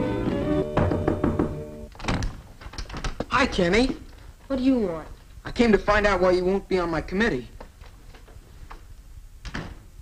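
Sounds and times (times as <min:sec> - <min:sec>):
background music with held notes: 0:00.0 - 0:01.9
wooden door knocks and thuds: 0:00.7 - 0:03.3.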